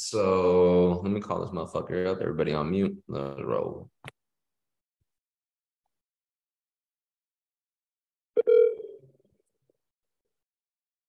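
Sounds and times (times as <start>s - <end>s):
short electronic phone tone: 8.4s - 9.1s.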